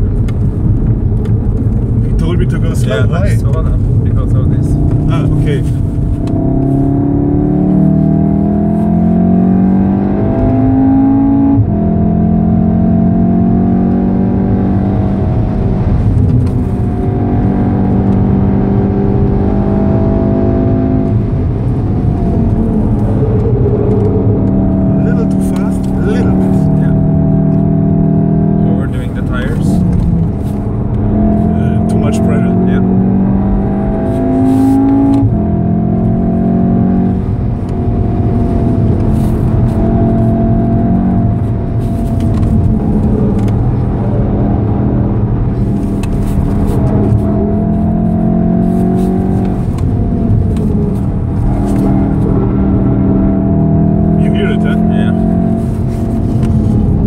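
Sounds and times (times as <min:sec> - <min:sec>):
car engine revving: 0:00.0 - 0:57.0
tyre and road rumble: 0:19.0 - 0:57.0.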